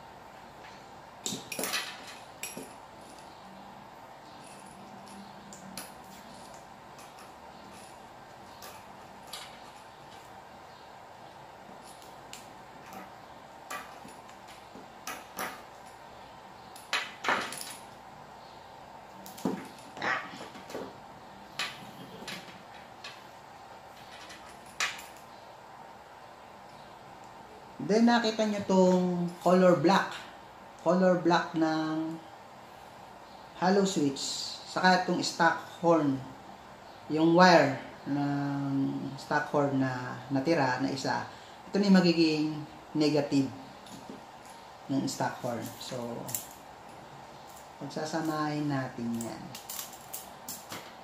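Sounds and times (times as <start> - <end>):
faint steady hum: 0.0 - 51.0
wires clicking and rustling: 0.5 - 18.2, 19.0 - 25.5, 43.7 - 51.0.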